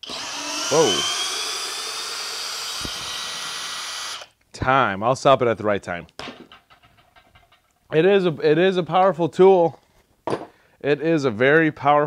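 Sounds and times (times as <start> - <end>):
drill knocking on wood: 0.0 - 4.3.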